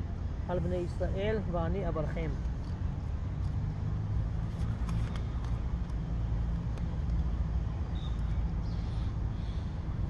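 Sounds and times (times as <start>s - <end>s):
low outdoor rumble: 0.0s - 10.0s
book pages turning: 4.4s - 6.0s.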